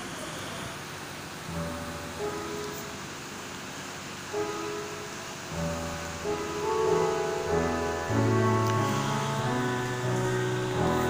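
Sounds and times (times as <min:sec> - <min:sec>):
piano sustained chords: 0:01.4 - 0:11.0.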